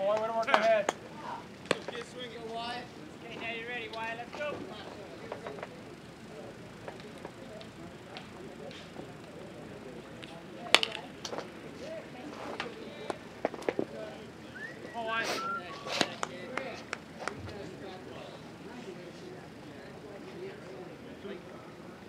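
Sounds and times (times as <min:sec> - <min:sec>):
voices calling out: 0:00.0 - 0:22.0.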